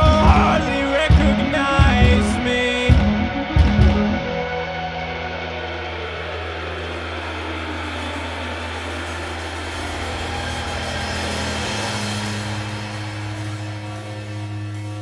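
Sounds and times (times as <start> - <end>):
live band droning instrumental: 0.0 - 15.0.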